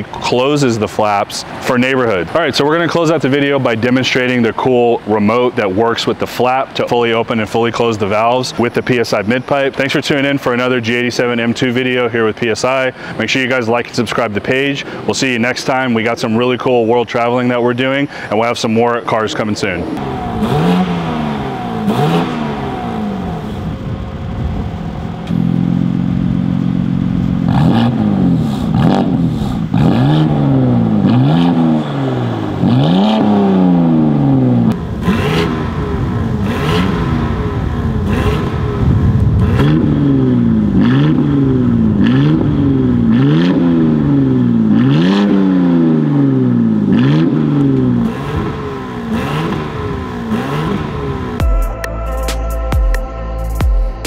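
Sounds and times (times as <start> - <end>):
car engine revving: 17.2 - 51.5.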